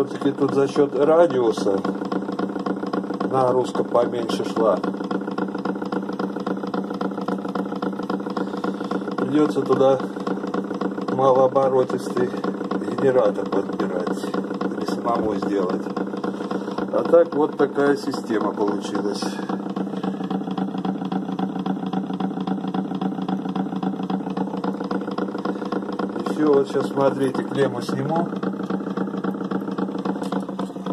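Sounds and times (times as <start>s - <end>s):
motor humming with fast ticking: 0.0s - 30.9s.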